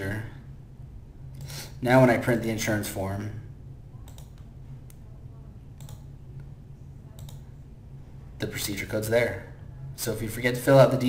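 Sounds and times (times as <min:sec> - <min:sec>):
low steady hum: 0:00.0 - 0:11.0
computer mouse click: 0:04.0 - 0:05.0, 0:05.8 - 0:06.5, 0:07.1 - 0:07.5.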